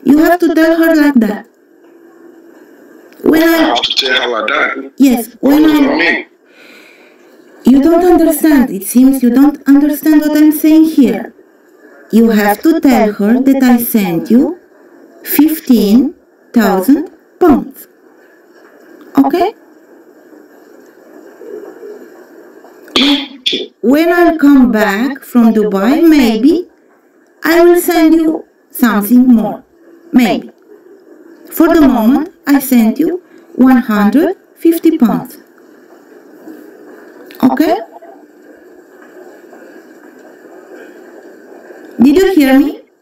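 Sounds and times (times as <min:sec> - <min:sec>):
call line hiss and hum: 0:00.0 - 0:43.0
faint low murmur: 0:00.0 - 0:43.0.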